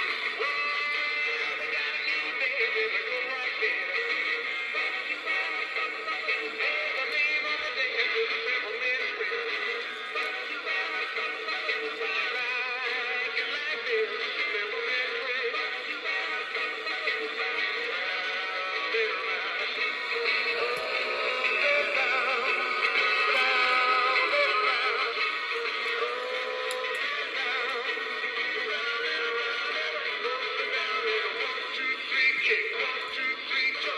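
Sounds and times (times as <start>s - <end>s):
tinny recorded singing with music: 0.0s - 33.9s
toy speaker playing song: 0.0s - 33.9s.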